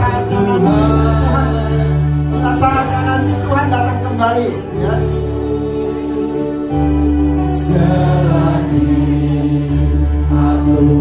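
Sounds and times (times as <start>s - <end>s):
person singing into microphone: 0.0s - 3.5s
congregation singing a hymn: 0.0s - 11.0s.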